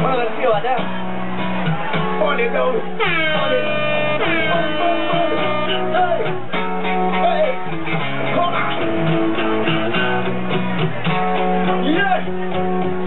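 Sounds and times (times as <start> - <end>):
live band with electric guitar: 0.0 - 13.0.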